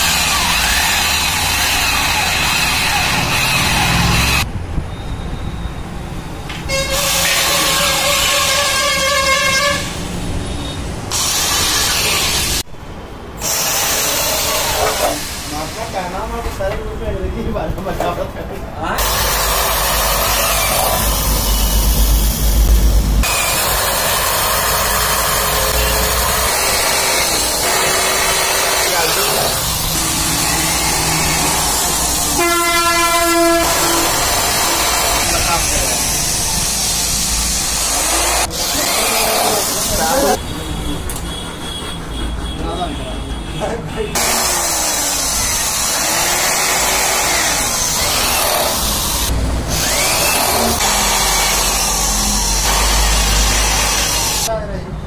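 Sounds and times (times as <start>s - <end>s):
electric drill driving screws: 0.0s - 4.5s, 11.1s - 12.6s, 13.4s - 15.2s, 19.0s - 22.0s, 23.2s - 32.3s, 33.6s - 40.4s, 44.2s - 54.5s
vehicle horn blast: 6.7s - 10.0s, 32.4s - 34.2s.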